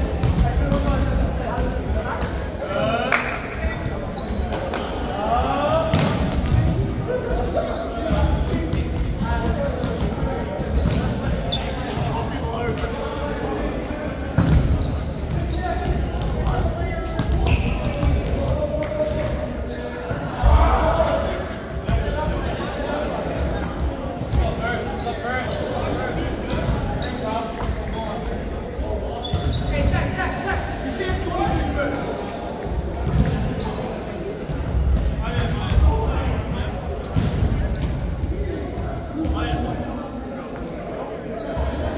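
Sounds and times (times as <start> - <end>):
volleyballs hit and bouncing: 0.0 - 2.4, 5.9 - 7.4, 8.1 - 12.7, 31.1 - 33.7
players' voices and shouts: 0.0 - 41.9.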